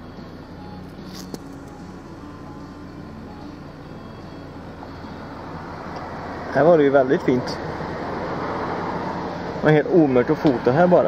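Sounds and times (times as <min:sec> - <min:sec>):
motor vehicle running hum: 0:00.0 - 0:11.0.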